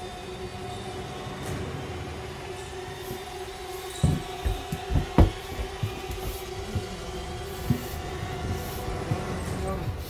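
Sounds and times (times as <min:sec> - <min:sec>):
soft low thuds: 0:04.0 - 0:09.3.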